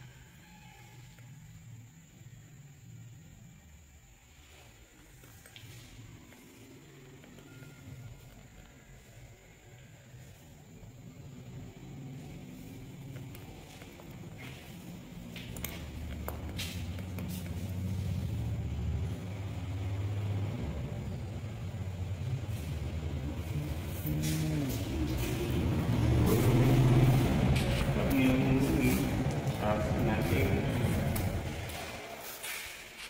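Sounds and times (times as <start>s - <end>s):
low engine rumble: 1.3s - 32.4s.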